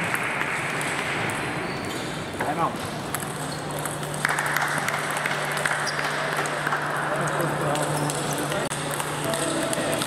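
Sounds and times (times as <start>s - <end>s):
applause: 0.0s - 1.1s, 4.2s - 8.7s.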